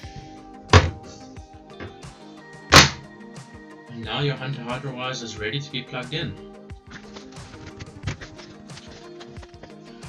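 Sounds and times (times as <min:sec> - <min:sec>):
soft background music: 0:00.0 - 0:10.0
plastic cover clacking shut: 0:02.7 - 0:03.0.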